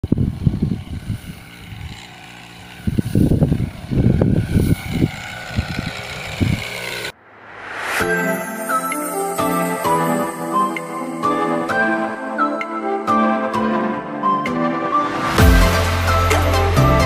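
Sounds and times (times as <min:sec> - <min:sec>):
wind buffeting microphone: 0:00.0 - 0:07.1
crop sprayer engine running: 0:00.0 - 0:07.2, 0:15.3 - 0:17.0.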